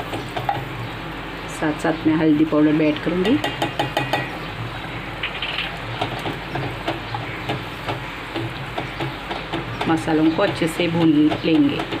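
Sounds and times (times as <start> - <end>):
paste sizzling in hot oil: 3.6 - 10.8
wooden spatula stirring ticks: 5.2 - 12.0.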